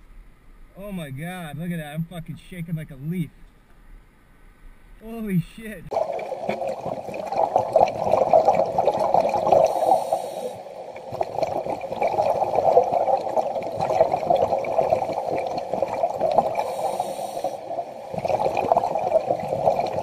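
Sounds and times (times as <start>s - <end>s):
underwater bubbling: 5.9s - 20.0s.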